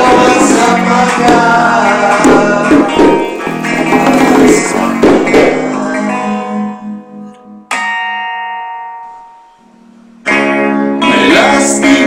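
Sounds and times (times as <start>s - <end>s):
strummed guitar chords: 0.0s - 12.0s
guitar chord ringing out: 5.9s - 11.3s.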